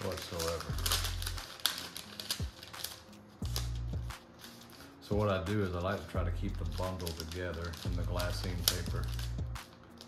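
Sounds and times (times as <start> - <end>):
paper crackling and rustling: 0.0 - 10.0.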